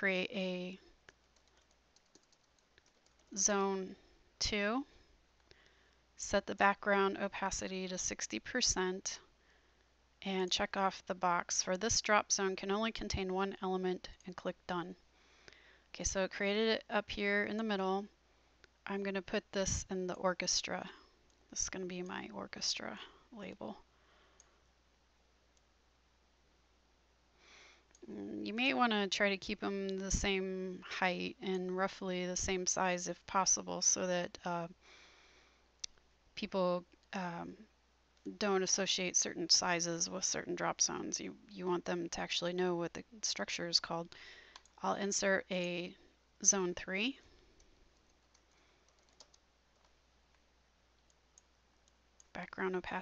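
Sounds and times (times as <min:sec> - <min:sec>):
computer mouse clicks: 0:01.0 - 0:03.3, 0:44.5 - 0:44.8, 0:47.6 - 0:50.4
faint keyboard keystrokes: 0:01.1 - 0:03.3, 0:47.6 - 0:50.4.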